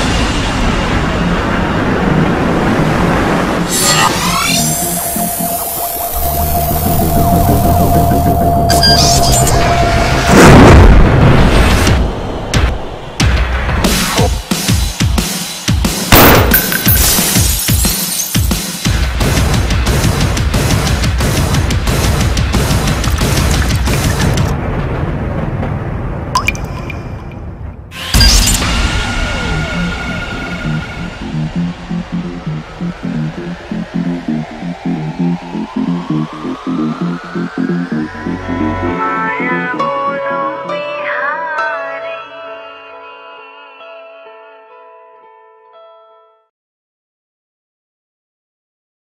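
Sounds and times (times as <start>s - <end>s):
dense rushing noise: 0.0s - 8.7s, 9.5s - 17.0s, 27.9s - 39.0s
low drone: 0.0s - 13.2s, 28.0s - 40.8s
high screeching sweep: 3.7s - 10.5s, 28.0s - 41.4s
water drop plink: 26.4s - 27.4s
pulsing low beat: 29.2s - 39.0s.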